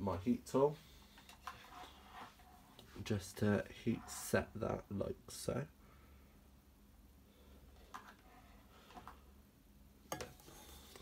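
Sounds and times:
faint handling sounds: 0:00.0 - 0:04.7.

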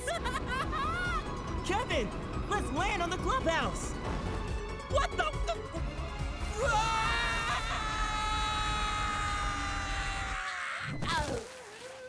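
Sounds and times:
low rumble: 0:00.2 - 0:05.2.

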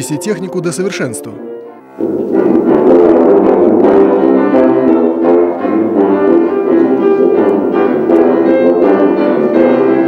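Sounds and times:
piano accompaniment: 0:00.0 - 0:10.0
tuba playing quick notes: 0:01.8 - 0:10.0.

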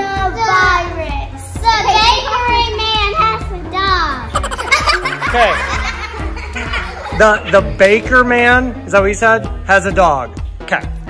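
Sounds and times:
background music: 0:00.0 - 0:11.0
children laughing: 0:04.3 - 0:07.8.

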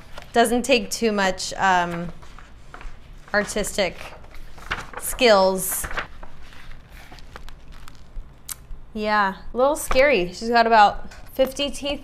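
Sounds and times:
sketchbook handling noise: 0:01.8 - 0:08.7.

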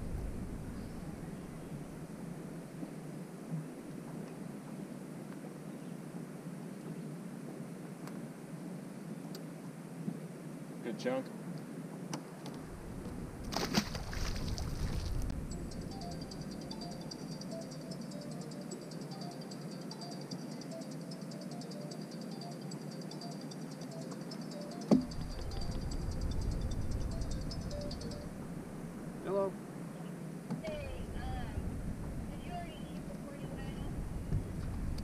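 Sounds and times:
fish splashing into water: 0:13.5 - 0:15.2
cell phone ringing: 0:15.5 - 0:28.4.

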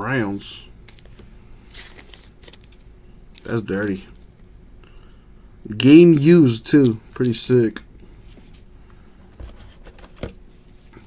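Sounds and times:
card rustling and scraping: 0:00.9 - 0:04.2, 0:09.3 - 0:11.0.

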